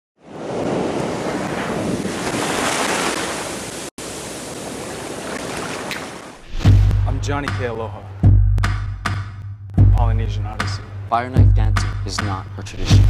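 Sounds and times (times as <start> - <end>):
ocean surf washing: 0.2 - 6.6.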